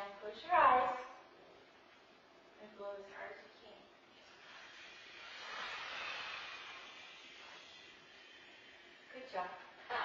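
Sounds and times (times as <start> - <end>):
people blowing out air: 4.3 - 9.1.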